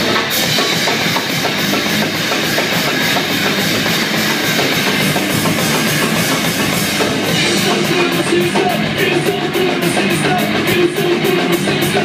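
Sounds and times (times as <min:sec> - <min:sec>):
driving drum beat: 0:00.0 - 0:12.0
electric guitars: 0:00.0 - 0:12.0.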